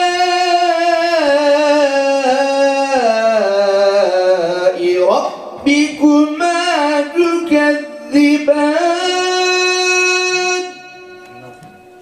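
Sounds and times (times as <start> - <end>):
echo in a hall: 0.0 - 12.0
man chanting melodically: 0.0 - 12.0.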